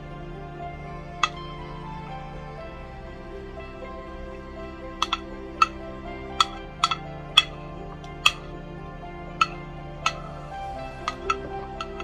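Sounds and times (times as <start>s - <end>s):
instrumental background music: 0.0s - 12.0s.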